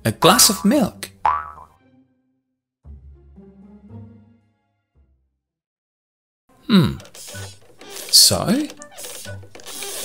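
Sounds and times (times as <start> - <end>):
cartoon boing effect: 1.2 - 1.7.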